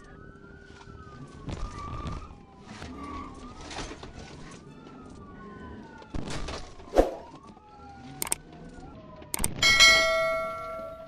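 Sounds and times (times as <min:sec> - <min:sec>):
police siren wailing: 0:00.0 - 0:11.0.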